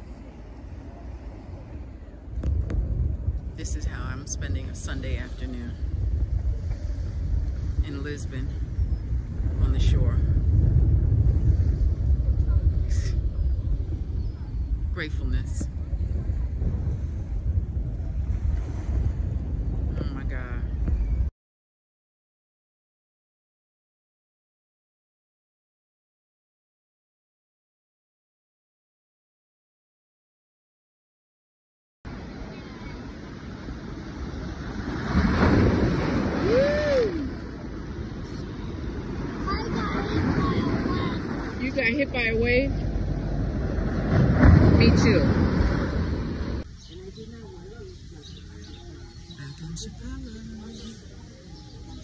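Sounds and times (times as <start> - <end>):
wind buffeting microphone: 0.0 - 21.3, 32.1 - 52.0
waves crashing on rocks: 32.1 - 46.6.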